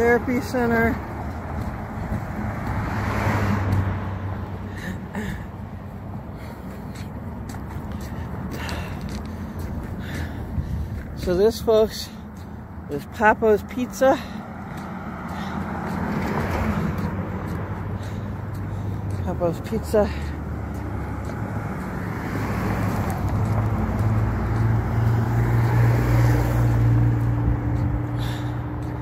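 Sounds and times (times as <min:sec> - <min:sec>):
vehicle passing: 0:00.0 - 0:29.0.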